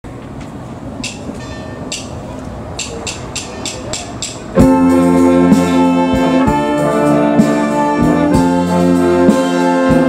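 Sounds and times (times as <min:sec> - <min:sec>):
percussion strokes: 0:01.0 - 0:10.0
brass band playing: 0:04.5 - 0:10.0.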